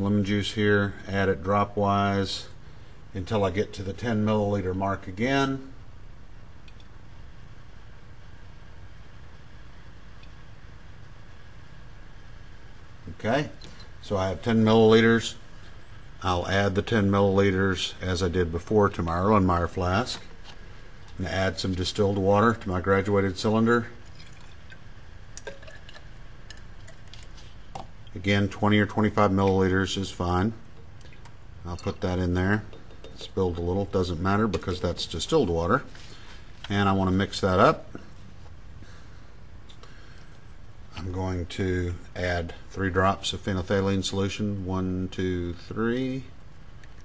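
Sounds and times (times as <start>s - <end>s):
low room hum with hiss: 0.0s - 47.0s
water trickling into cylinder: 24.0s - 28.2s, 30.6s - 34.0s.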